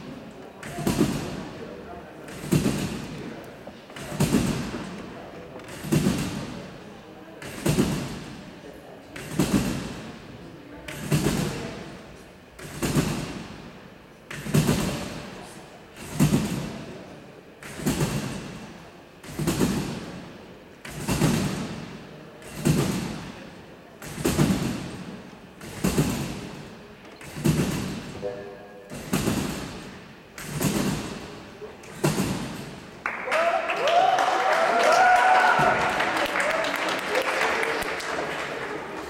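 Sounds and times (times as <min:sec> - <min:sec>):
trampoline landing thuds: 0:00.0 - 0:06.8, 0:07.4 - 0:28.3, 0:28.9 - 0:33.0.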